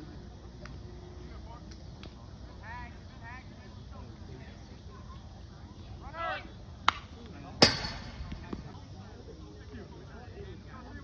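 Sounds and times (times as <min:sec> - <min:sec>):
baseball bat crack: 0:06.8 - 0:08.7.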